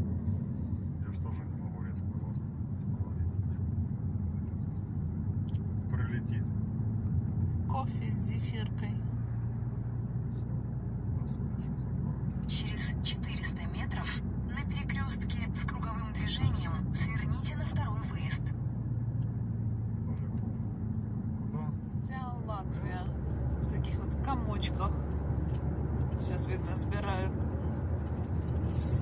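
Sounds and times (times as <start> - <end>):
engine and road rumble: 0.0 - 29.0.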